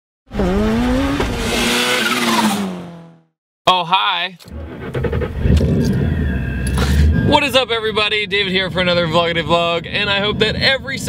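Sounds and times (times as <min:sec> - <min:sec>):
car engine revving hard: 0:00.3 - 0:03.3.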